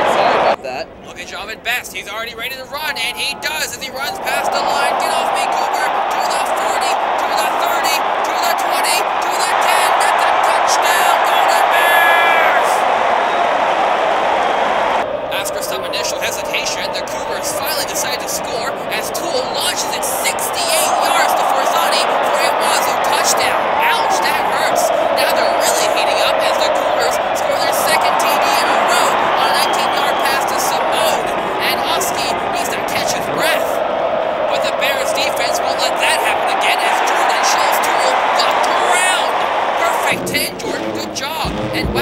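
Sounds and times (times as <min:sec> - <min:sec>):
stadium crowd cheering: 0:00.0 - 0:00.6, 0:02.0 - 0:42.0
people clapping: 0:03.5 - 0:33.8, 0:34.4 - 0:42.0.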